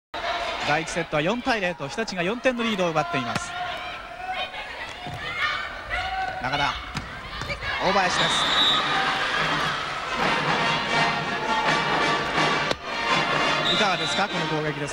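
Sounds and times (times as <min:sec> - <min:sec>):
arena crowd noise: 0:00.1 - 0:14.9
volleyball hitting wooden court: 0:04.8 - 0:05.4, 0:06.2 - 0:07.8.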